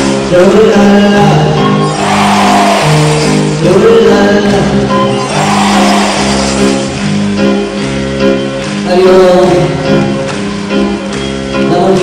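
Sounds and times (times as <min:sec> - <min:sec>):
person singing: 0:00.3 - 0:06.6, 0:11.7 - 0:12.0
live band music: 0:01.6 - 0:12.0.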